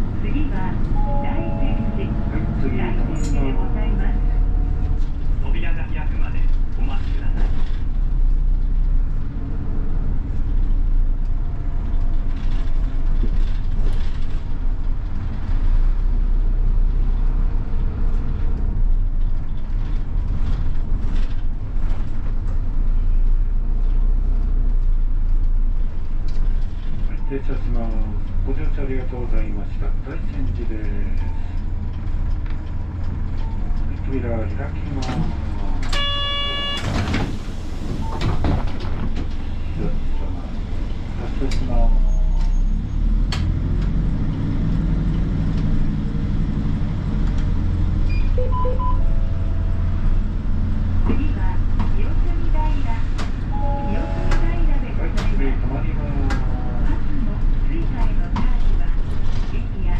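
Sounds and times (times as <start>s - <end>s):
bus engine and road drone: 0.0s - 59.9s.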